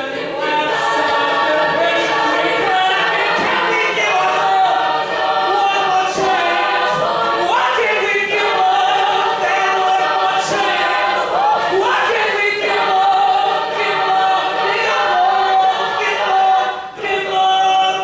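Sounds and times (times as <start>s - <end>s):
a cappella group singing chords: 0.0s - 18.0s.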